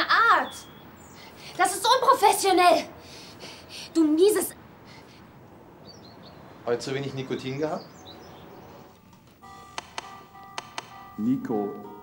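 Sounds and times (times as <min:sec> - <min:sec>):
soft background music: 0:07.6 - 0:12.0
sharp tapping clicks: 0:09.1 - 0:11.1.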